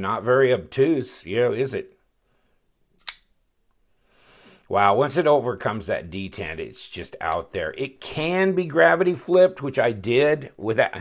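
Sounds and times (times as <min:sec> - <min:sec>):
folding knife snapping open: 0:03.0 - 0:03.3.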